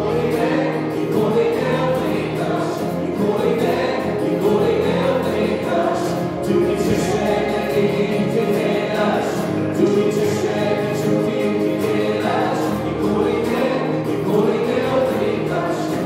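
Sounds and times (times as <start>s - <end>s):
acoustic guitars: 0.0s - 16.0s
electric keyboard: 0.0s - 16.0s
voices singing together: 0.0s - 16.0s.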